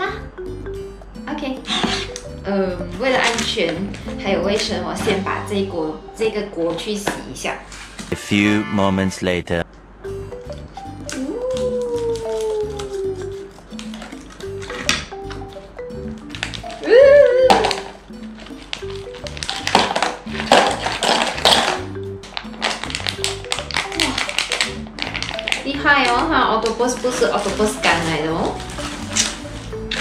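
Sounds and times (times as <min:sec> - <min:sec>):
background music with repeating beat: 0:00.2 - 0:06.2, 0:10.0 - 0:12.0, 0:12.6 - 0:26.0, 0:27.4 - 0:30.0
plastic packaging crinkling: 0:11.5 - 0:14.6, 0:16.3 - 0:16.8, 0:17.6 - 0:30.0.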